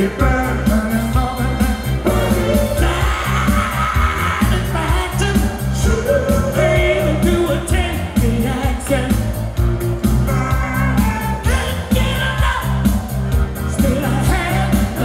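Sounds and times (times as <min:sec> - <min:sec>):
male vocal group singing: 0:00.0 - 0:09.4, 0:10.1 - 0:15.0
disco music over loudspeakers: 0:00.0 - 0:15.0.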